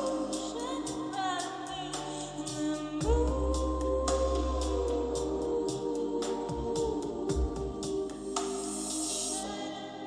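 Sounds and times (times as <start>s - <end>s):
low bass thumps: 3.0s - 4.9s, 6.5s - 7.9s.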